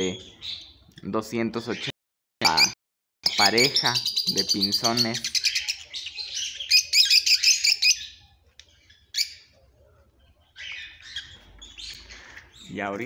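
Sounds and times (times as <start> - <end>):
caged birds chirping: 0.0 - 13.0.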